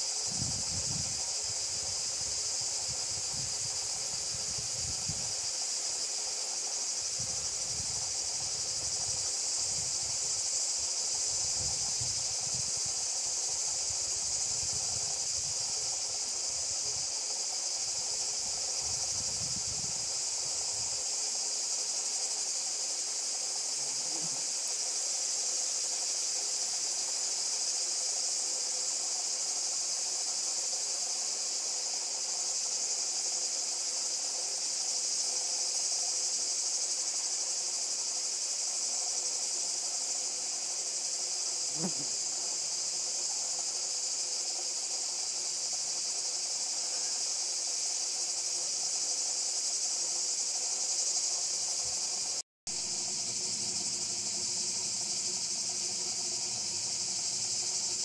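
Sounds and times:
high-pitched insect buzzing: 0:23.2 - 0:24.9, 0:40.8 - 0:42.9.

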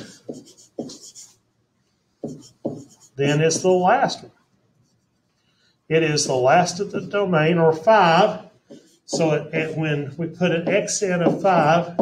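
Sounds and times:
stylus scratching on tablet screen: 0:00.0 - 0:01.4, 0:02.1 - 0:03.9, 0:04.7 - 0:05.4, 0:08.0 - 0:12.0.

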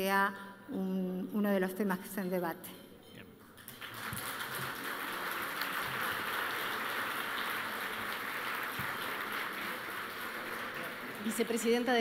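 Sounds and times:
audience applauding: 0:03.6 - 0:12.0.

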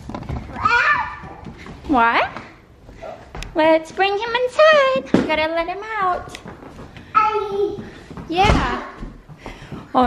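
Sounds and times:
toddler high-pitched vocalization: 0:00.5 - 0:01.4, 0:07.2 - 0:07.9
woman speaking: 0:01.9 - 0:02.5, 0:03.6 - 0:06.4.

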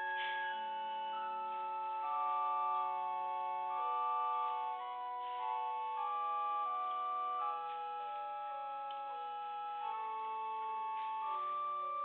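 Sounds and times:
pipe organ sustained chords: 0:00.0 - 0:12.0.

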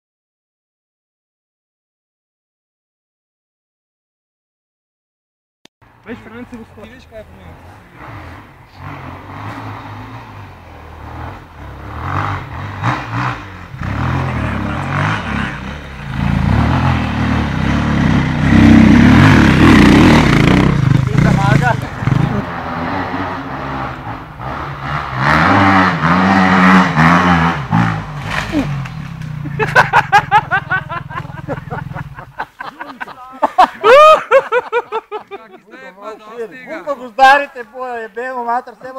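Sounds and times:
dirt bike engine revving: 0:08.0 - 0:32.4.

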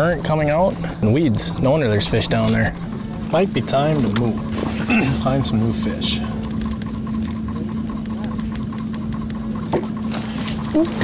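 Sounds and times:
boat motor humming: 0:00.0 - 0:11.0.

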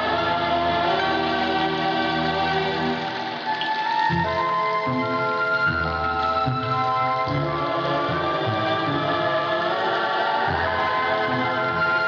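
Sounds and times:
choir holding sustained notes: 0:00.0 - 0:12.0.

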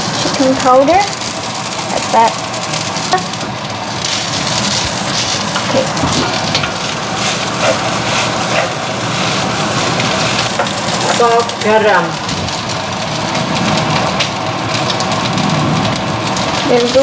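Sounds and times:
rice sizzling in a wok: 0:00.0 - 0:17.0
wooden spatula scraping pan: 0:04.6 - 0:09.4.

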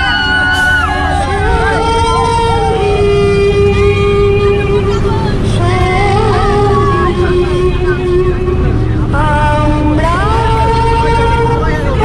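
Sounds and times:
bus engine rumble: 0:00.0 - 0:12.0
road noise: 0:00.0 - 0:12.0
woman singing into microphone: 0:00.0 - 0:12.0.

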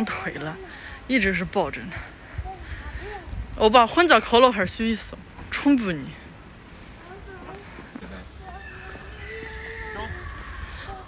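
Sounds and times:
footsteps on pavement: 0:05.0 - 0:11.0.

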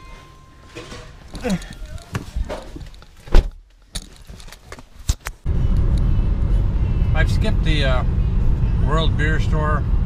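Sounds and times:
car cabin road rumble: 0:05.4 - 0:10.0.

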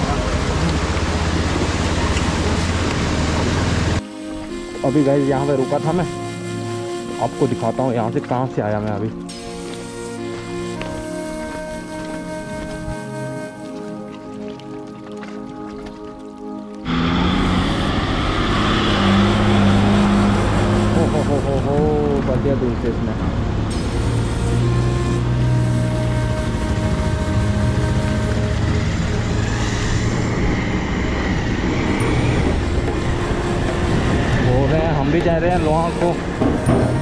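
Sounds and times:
music: 0:00.0 - 0:37.0.

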